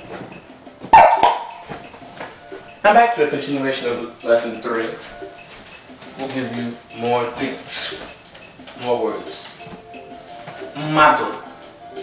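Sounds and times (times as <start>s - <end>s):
bark-like animal call: 0.9s - 1.6s.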